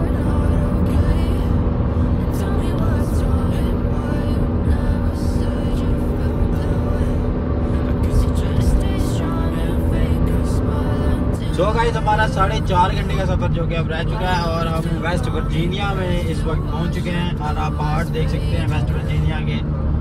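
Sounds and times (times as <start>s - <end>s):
background music: 0.0s - 20.0s
car road and engine rumble: 0.0s - 20.0s.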